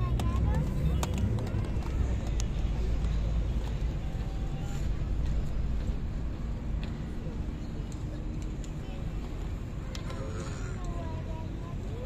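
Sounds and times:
crowd chatter outdoors: 0:00.0 - 0:12.0
steady low rumble: 0:00.0 - 0:12.0.

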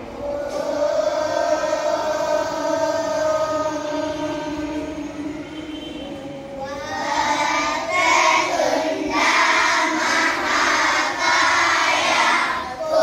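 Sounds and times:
girls singing in unison: 0:00.0 - 0:13.0.

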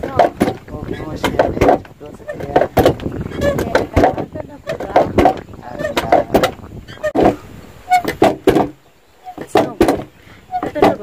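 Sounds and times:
women speaking: 0:03.4 - 0:05.3, 0:10.6 - 0:11.0.

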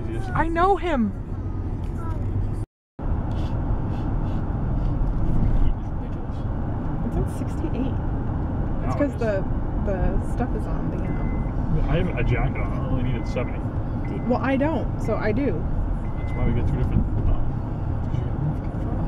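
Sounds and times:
faint voices: 0:00.0 - 0:01.1, 0:08.8 - 0:15.2
car cabin road rumble: 0:00.0 - 0:19.0.

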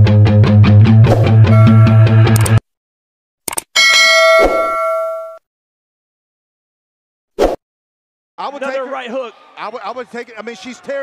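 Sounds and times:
bell-like ding: 0:03.8 - 0:05.4.

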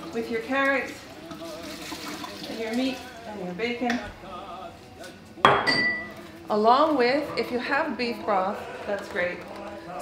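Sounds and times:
kitchenware clink: 0:05.5 - 0:06.2.

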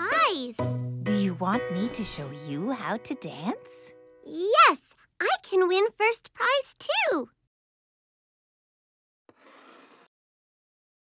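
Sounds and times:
record sleeve sliding rustle: 0:09.3 - 0:10.1.

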